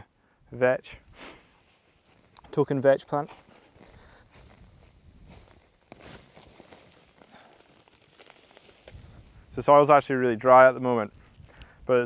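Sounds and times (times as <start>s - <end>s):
plant stalks rustling: 1.2s - 12.0s
roots tearing from soil: 1.6s - 12.0s.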